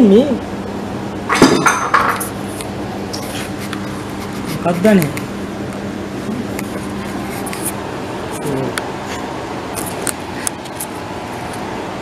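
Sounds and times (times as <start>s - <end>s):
hard objects clattering: 1.3s - 2.4s.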